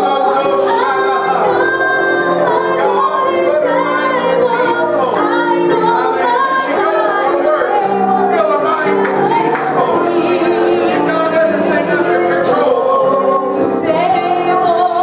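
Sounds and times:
long held chords: 0:00.0 - 0:15.0
woman singing worship song: 0:00.0 - 0:15.0.

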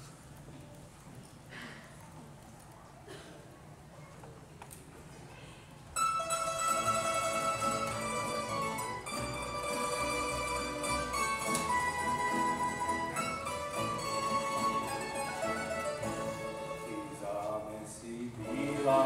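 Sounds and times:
double bass: 0:06.0 - 0:19.0
plucked string ensemble: 0:06.0 - 0:19.0.

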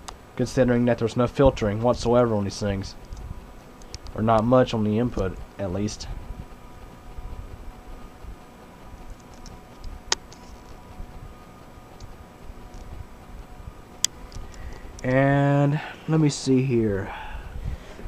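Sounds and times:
faint steady hum: 0:00.0 - 0:18.0
camera handling rumble: 0:03.0 - 0:04.5, 0:09.0 - 0:10.9, 0:12.0 - 0:13.0, 0:14.0 - 0:15.1.

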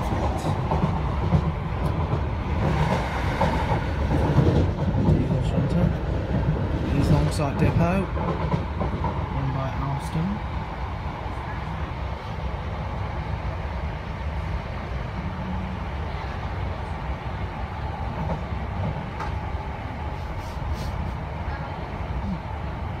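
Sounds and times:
train wheels rumbling on rails: 0:00.0 - 0:23.0.

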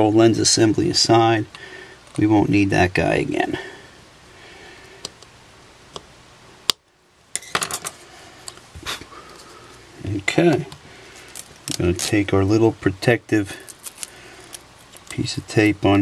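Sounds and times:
small parts clicking on steel: 0:11.2 - 0:12.1.

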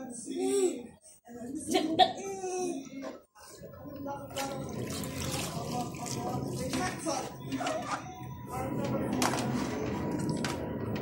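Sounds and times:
indistinct voices: 0:02.2 - 0:11.0
water sloshing in basin: 0:04.3 - 0:07.3.

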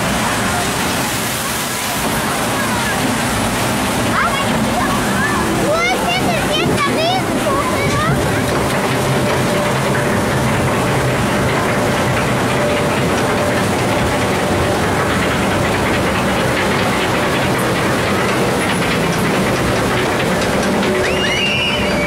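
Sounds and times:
ride mechanical rattle and rumble: 0:00.0 - 0:22.0.

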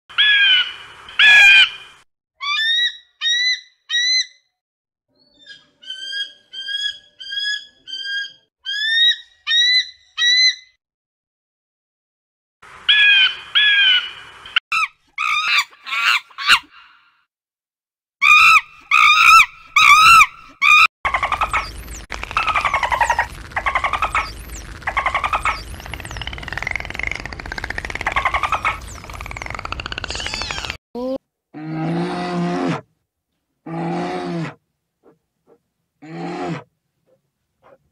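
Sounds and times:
eagle piping chirps: 0:05.2 - 0:10.6, 0:18.3 - 0:30.8
monkeys chattering and screeching: 0:05.4 - 0:10.5, 0:18.2 - 0:30.8.

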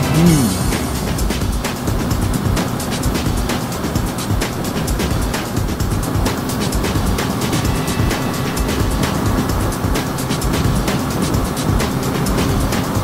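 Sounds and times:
wind rushing: 0:00.0 - 0:12.8
background music: 0:00.0 - 0:13.0
motorcycle engine at speed: 0:00.0 - 0:13.0.

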